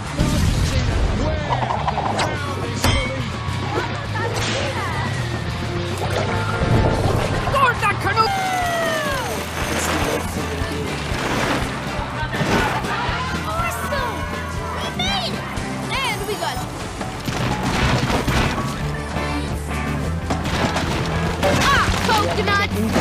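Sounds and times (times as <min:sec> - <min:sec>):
cartoon background music: 0:00.3 - 0:23.0
wordless cartoon voices: 0:11.9 - 0:16.7.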